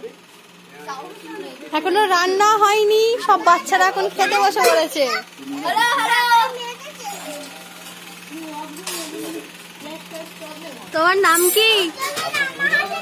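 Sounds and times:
child speaking: 3.1 - 7.6, 8.3 - 13.0.

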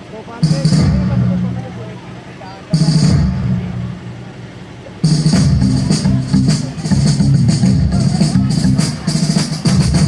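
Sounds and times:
faint crowd chatter: 0.0 - 10.0
recorded track over loudspeaker: 0.0 - 10.0
heavy boom: 2.8 - 4.3.

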